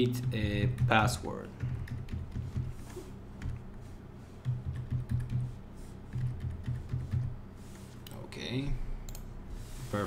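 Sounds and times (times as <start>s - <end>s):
typing on computer keyboard: 4.4s - 5.5s, 6.1s - 7.3s.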